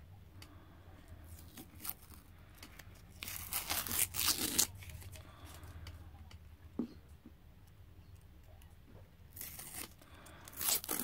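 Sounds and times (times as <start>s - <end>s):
masking tape being peeled off: 1.3s - 5.2s, 9.3s - 11.0s.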